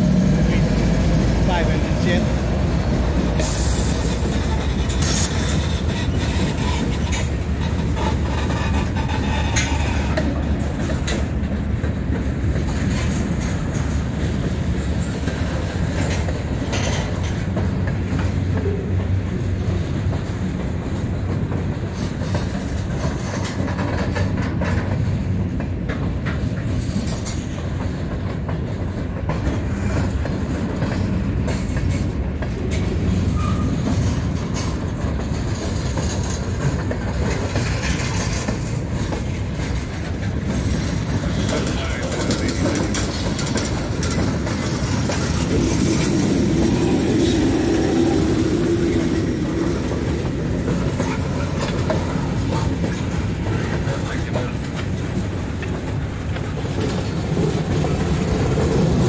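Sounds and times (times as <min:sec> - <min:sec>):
train wheels rumbling on rail: 0:00.0 - 0:59.0
wheels clacking over rail joints: 0:00.0 - 0:59.0.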